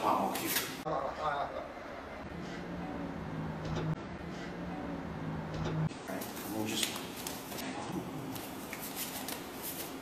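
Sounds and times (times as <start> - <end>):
hands slapping and brushing: 8.3 - 10.0.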